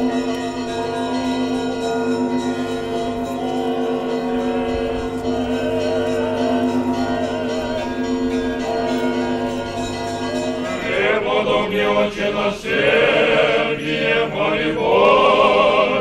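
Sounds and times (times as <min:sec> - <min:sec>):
church bells ringing: 0:00.0 - 0:16.0
choir singing held notes: 0:10.5 - 0:16.0.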